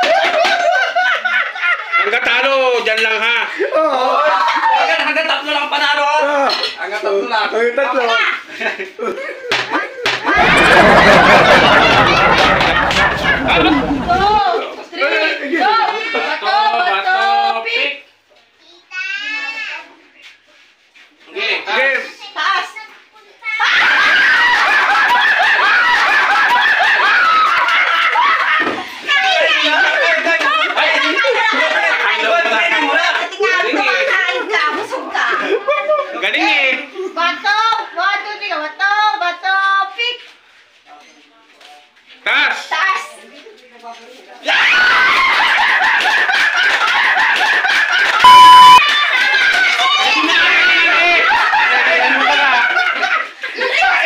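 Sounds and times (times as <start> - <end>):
people screaming and laughing: 10.3 - 14.5, 23.6 - 29.0, 44.4 - 54.0
loud steady beep tone: 48.2 - 48.8.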